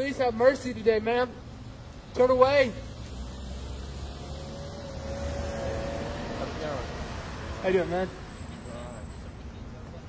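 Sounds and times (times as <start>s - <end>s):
distant street traffic rumble: 0.0s - 10.0s.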